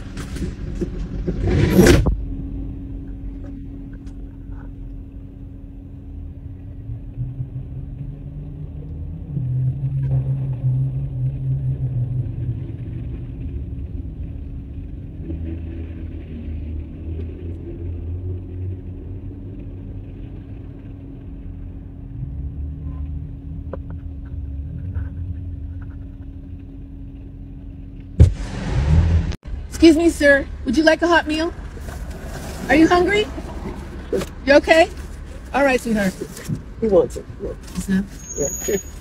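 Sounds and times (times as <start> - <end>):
motor vehicle rumble: 0.0 - 39.0.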